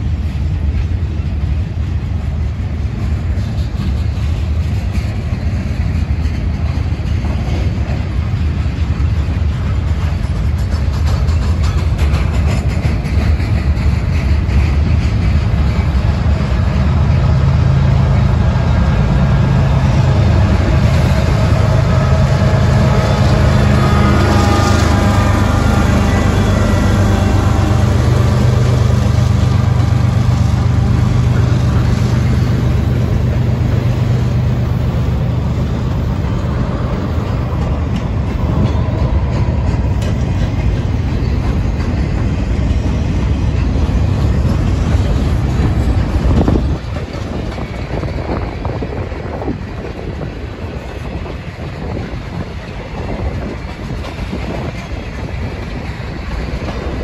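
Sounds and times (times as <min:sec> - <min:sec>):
diesel locomotive drone: 0:00.0 - 0:57.0
freight train rumble and clatter: 0:00.0 - 0:57.0.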